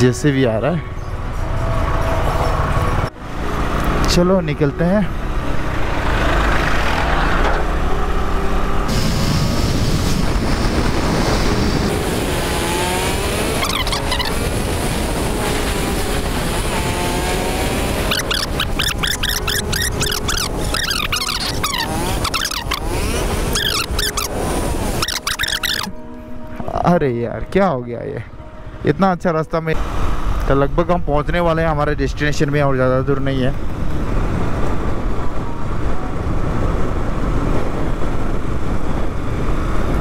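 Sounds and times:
wind rush on microphone: 0:08.8 - 0:25.0, 0:31.3 - 0:40.0
motorcycle engine running: 0:10.0 - 0:25.9.

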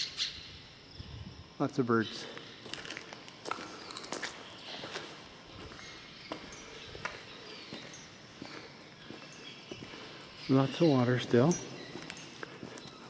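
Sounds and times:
footsteps on concrete floor: 0:02.2 - 0:13.0
faint high bird chirps: 0:03.7 - 0:13.0.

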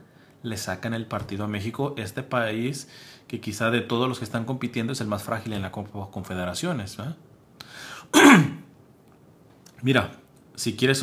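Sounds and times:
man clearing his throat: 0:08.1 - 0:08.7.

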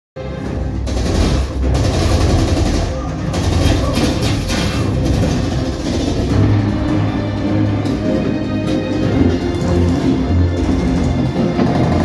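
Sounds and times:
movie soundtrack with deep bass: 0:00.2 - 0:12.0.

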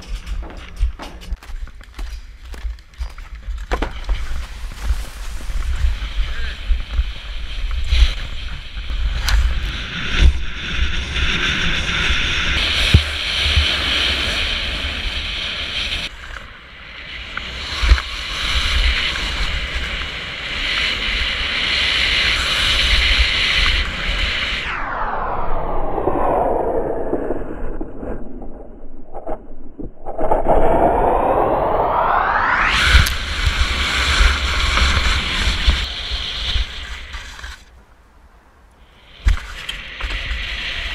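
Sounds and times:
skis scraping over snow: 0:00.0 - 0:16.6, 0:17.4 - 0:24.3, 0:32.7 - 0:37.8, 0:39.2 - 0:40.9
wind buffeting microphone: 0:03.0 - 0:16.1, 0:16.8 - 0:40.9
falling pitch sweep: 0:24.1 - 0:37.3.

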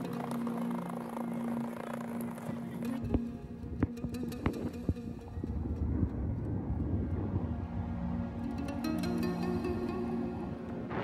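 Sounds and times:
wind on microphone: 0:03.0 - 0:08.6.

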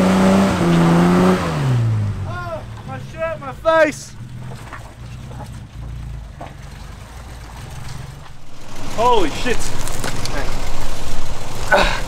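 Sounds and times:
engine droning under load: 0:00.0 - 0:12.0
tyres spinning in mud: 0:02.2 - 0:12.0.

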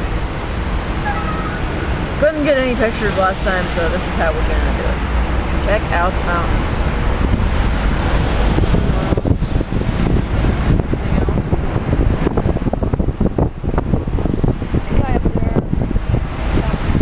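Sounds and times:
cars passing close by: 0:00.0 - 0:17.0
wind rumble on microphone: 0:00.0 - 0:17.0.

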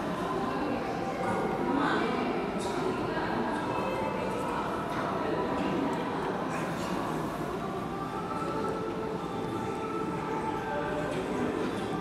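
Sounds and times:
murmur of many voices: 0:00.0 - 0:12.0.

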